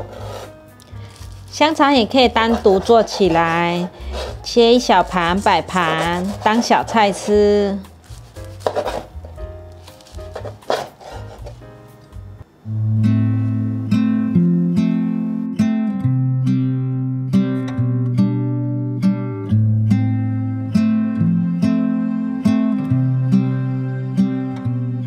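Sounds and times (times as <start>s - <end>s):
cleaver slicing on wooden board: 0.0s - 4.5s, 5.3s - 11.6s
acoustic guitar music: 0.0s - 25.0s.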